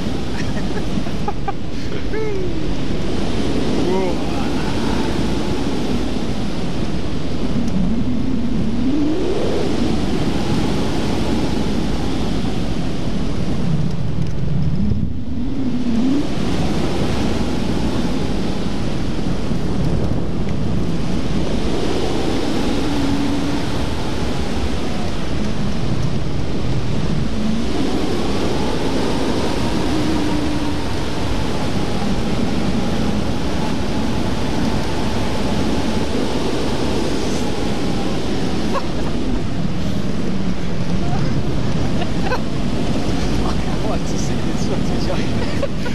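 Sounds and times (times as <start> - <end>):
wind roaring over microphone: 0.0 - 45.9
faint tones rising and falling: 0.9 - 12.5.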